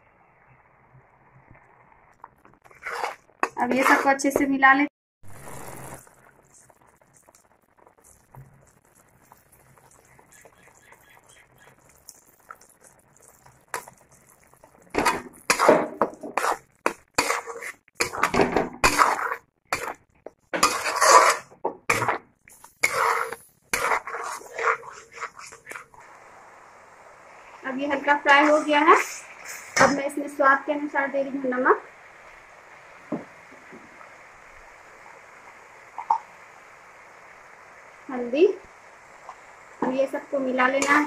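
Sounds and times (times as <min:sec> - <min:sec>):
spatula scraping metal pan: 0:02.7 - 0:04.4, 0:15.0 - 0:26.0, 0:40.8 - 0:41.0.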